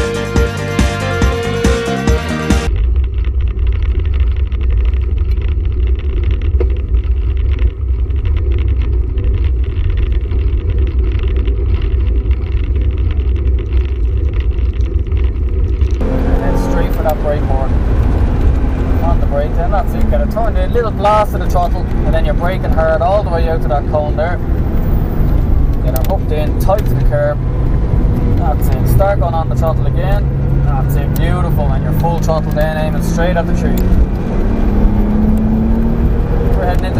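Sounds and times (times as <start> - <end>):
car engine inside cabin: 0.0 - 36.9
wind rumble buffeting camera: 2.7 - 36.9.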